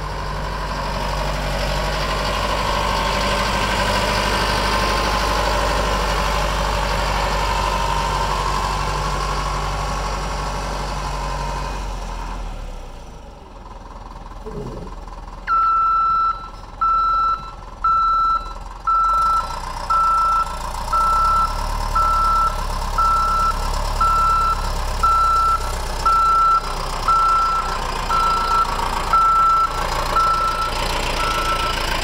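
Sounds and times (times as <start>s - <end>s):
diesel engine running: 0.0s - 32.0s
backup alarm beeping: 15.5s - 31.7s.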